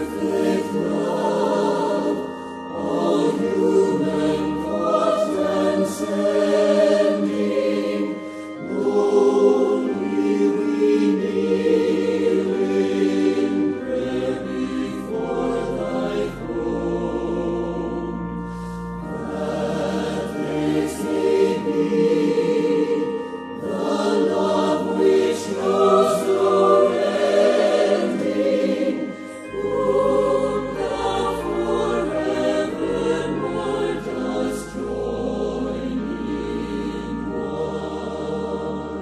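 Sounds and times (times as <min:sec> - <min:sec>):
choir singing with accompaniment: 0:00.0 - 0:39.0.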